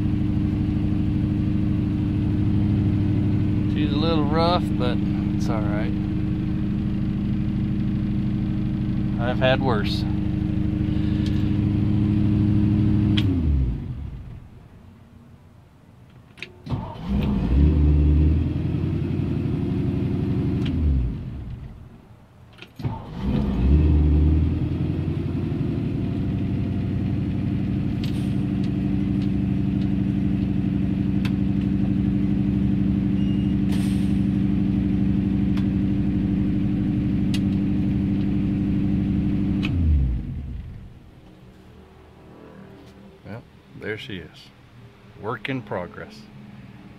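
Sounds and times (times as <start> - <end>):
car engine idling: 0.0 - 14.8, 24.9 - 41.3
engine cranking and revving: 8.6 - 14.4, 16.6 - 21.7, 22.8 - 32.5, 34.6 - 40.9.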